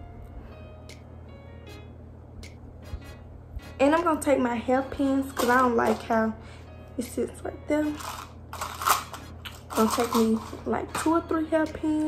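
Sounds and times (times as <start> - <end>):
rustling handling noise: 7.9 - 11.0.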